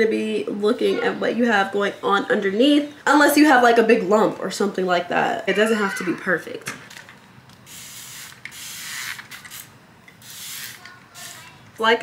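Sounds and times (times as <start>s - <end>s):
spray bottle hissing: 7.6s - 11.6s.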